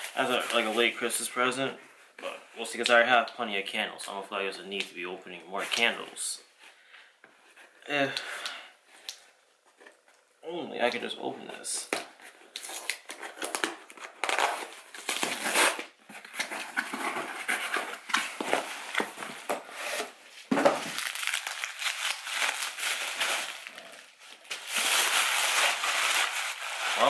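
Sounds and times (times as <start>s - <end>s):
candle wrapping crinkling: 20.8s - 27.0s.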